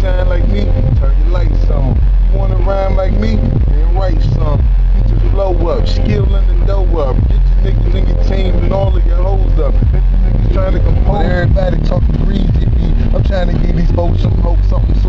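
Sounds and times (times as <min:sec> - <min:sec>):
deep bass beat: 0:00.0 - 0:15.0
man rapping: 0:00.0 - 0:15.0.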